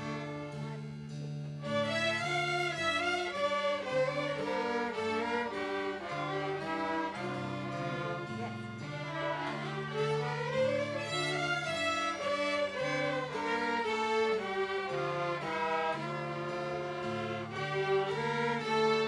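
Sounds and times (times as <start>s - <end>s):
string orchestra playing: 0.0s - 19.0s
harpsichord sound: 1.5s - 19.0s.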